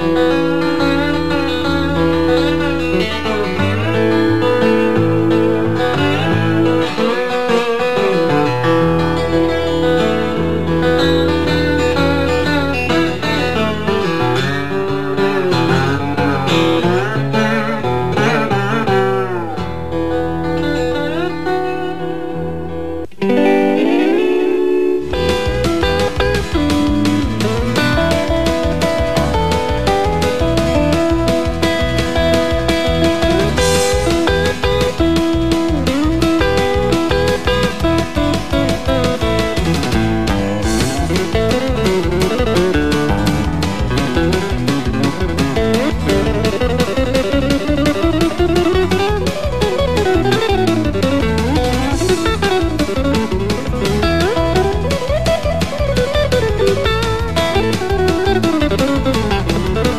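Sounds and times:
slide guitar: 0.0s - 59.9s.

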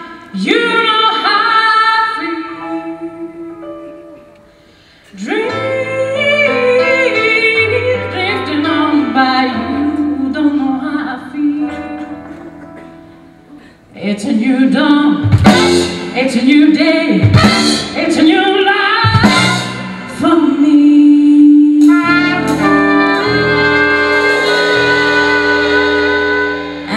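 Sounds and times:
woman singing into microphone: 0.0s - 4.0s, 5.1s - 12.9s, 13.9s - 15.3s, 16.1s - 23.9s
live blues band: 3.9s - 26.9s
drum and cymbal hits: 15.2s - 16.2s.

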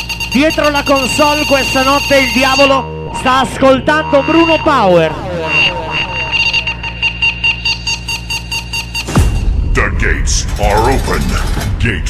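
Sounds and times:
pulsing synthesizer beeps: 0.0s - 9.6s
steady high tone: 0.0s - 9.6s
falling pitch sweep: 1.2s - 8.5s
low drone: 1.5s - 12.0s.

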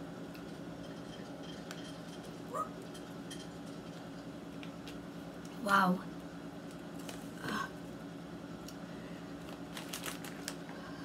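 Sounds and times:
faint steady hum: 0.0s - 11.0s
foil snack bag crinkling: 9.4s - 10.7s.

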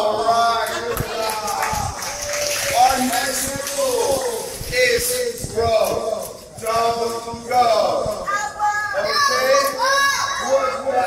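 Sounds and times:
children talking and calling out: 8.1s - 11.0s.

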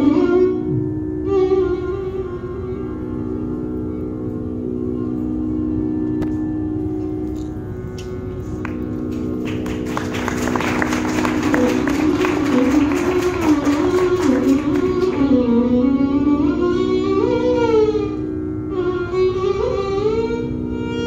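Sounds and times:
steady drone: 0.0s - 21.0s.

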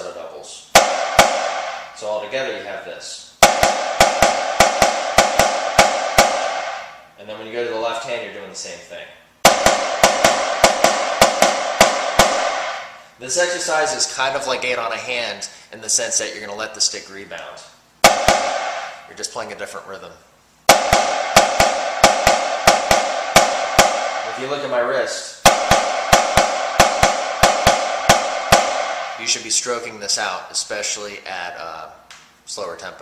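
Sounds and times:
snare drum double strokes: 3.4s - 7.0s, 9.4s - 13.0s, 20.7s - 24.5s, 25.4s - 29.5s.

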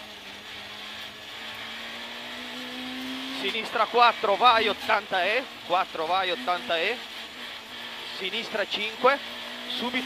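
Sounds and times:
car engine from inside cabin: 0.0s - 10.0s.

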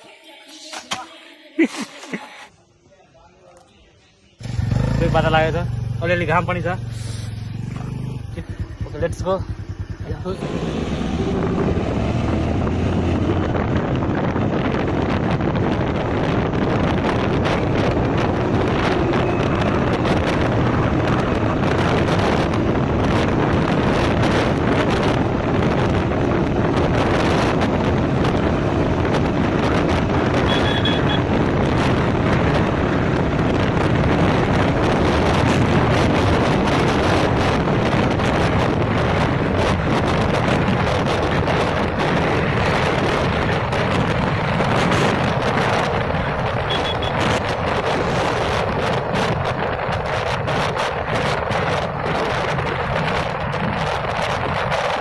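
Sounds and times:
motorcycle engine running: 4.4s - 55.0s
wind rushing over microphone: 4.4s - 55.0s.

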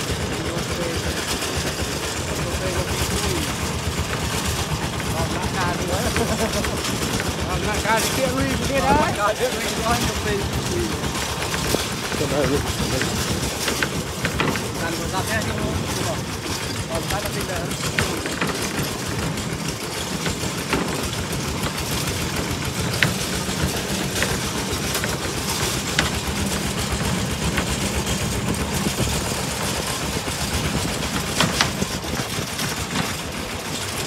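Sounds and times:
diesel engine running: 0.0s - 34.0s
trailer frame knocks and rattles: 0.0s - 34.0s.

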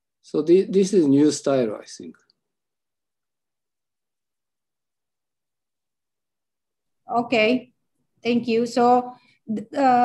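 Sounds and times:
man speaking: 0.2s - 2.3s.

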